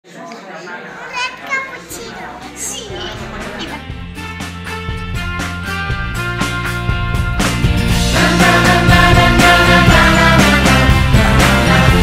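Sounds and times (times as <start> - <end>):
little girl talking: 1.0 - 3.8.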